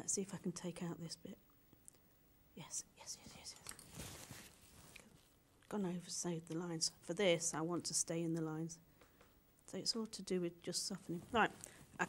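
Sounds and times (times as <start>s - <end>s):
woman whispering: 2.6s - 3.8s.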